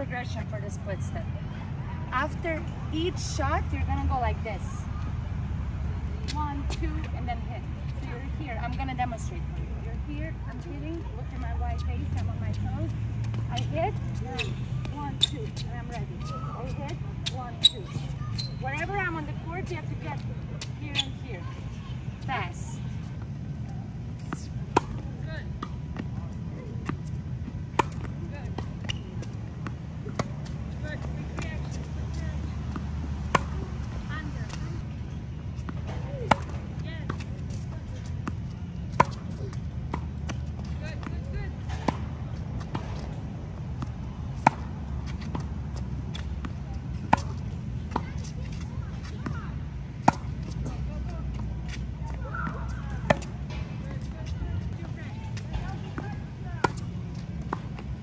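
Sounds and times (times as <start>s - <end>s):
tennis ball bounces: 10.5s - 34.9s, 35.6s - 58.0s
racket striking tennis ball: 24.2s - 26.1s, 27.7s - 34.7s, 35.7s - 43.1s, 47.0s - 48.2s, 52.4s - 57.9s.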